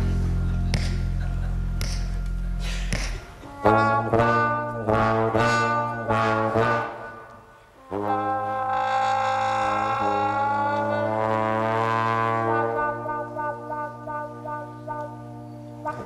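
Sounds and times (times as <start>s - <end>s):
two trombones playing: 3.4s - 16.0s.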